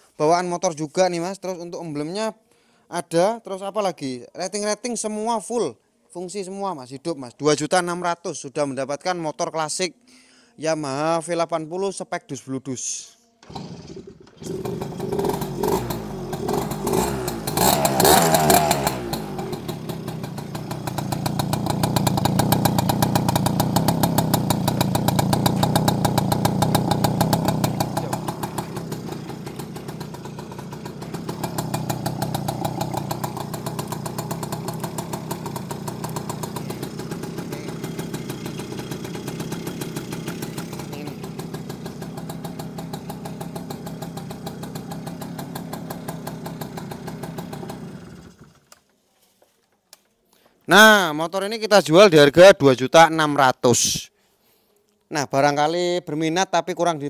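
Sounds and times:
two-stroke motorcycle engine revving: 13.4s - 48.6s.

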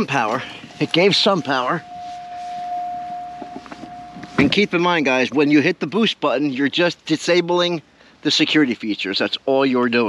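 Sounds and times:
electronic warning tone: 0.0s - 5.3s.

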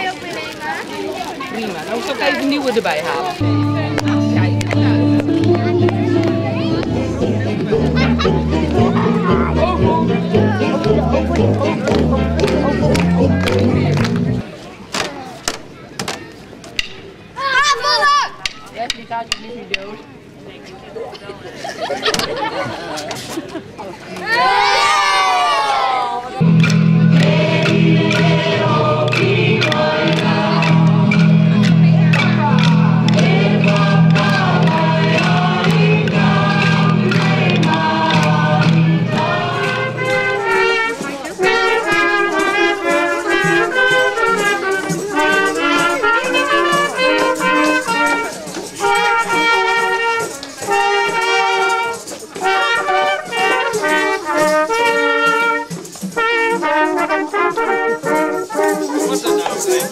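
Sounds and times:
french horns and trumpet: 32.6s - 59.9s.

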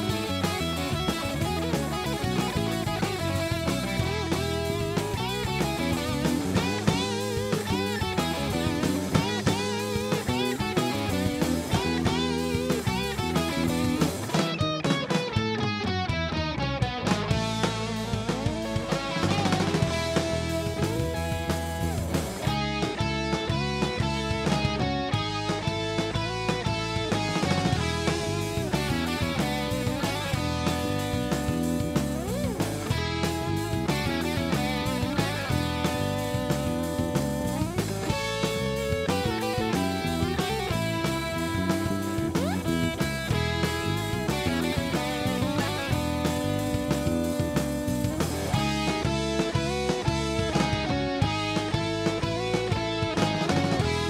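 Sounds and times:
bass guitar: 0.0s - 54.0s
drum kit: 0.0s - 54.0s
electric guitar lead lines: 0.0s - 54.0s
rhythm guitar: 0.0s - 54.0s.

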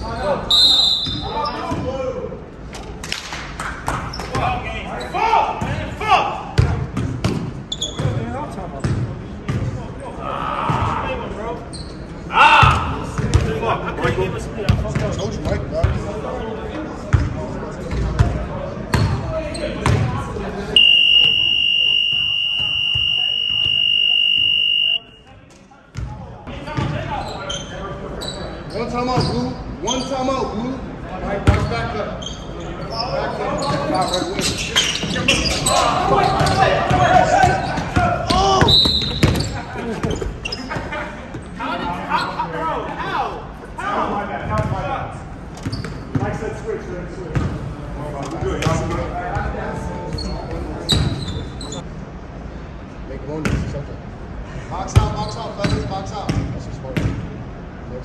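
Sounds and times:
players' voices: 0.0s - 51.9s
basketballs bouncing on gym floor: 6.6s - 9.8s, 12.6s - 13.5s, 25.9s - 26.2s, 36.3s - 40.2s, 55.0s - 57.2s
electronic buzzer tone: 20.8s - 25.0s.

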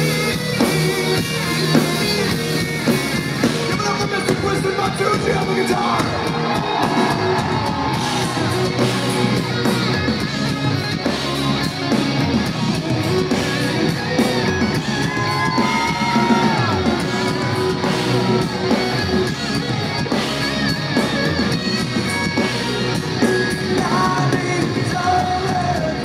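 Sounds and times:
live hard rock band: 0.0s - 26.0s
person singing: 23.6s - 26.0s.

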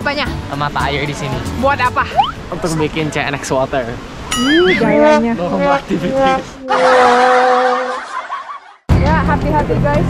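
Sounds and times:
steady held tone: 4.3s - 5.3s
boy laughing: 5.6s - 8.8s.

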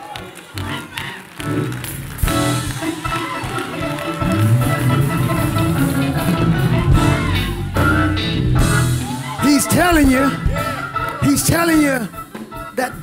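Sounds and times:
people clapping: 0.0s - 7.8s, 9.1s - 12.9s
church band playing: 0.6s - 13.0s
congregation calling out: 2.8s - 13.0s.

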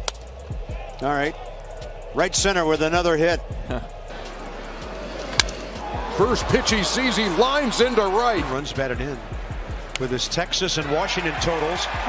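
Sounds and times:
ballpark crowd noise: 0.0s - 12.0s.

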